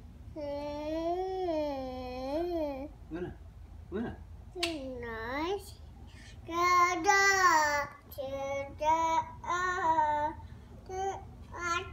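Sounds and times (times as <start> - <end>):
toddler singing without words: 6.5 - 11.9.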